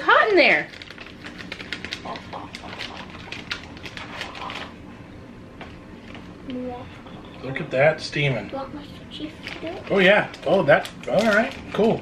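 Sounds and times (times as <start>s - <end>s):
plastic pouch crinkling: 0.7s - 4.8s, 9.4s - 12.0s.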